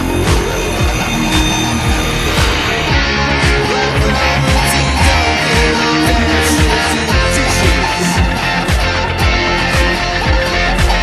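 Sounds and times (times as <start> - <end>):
distorted electric guitar riff: 0.0 - 11.0
drums hitting: 0.0 - 11.0.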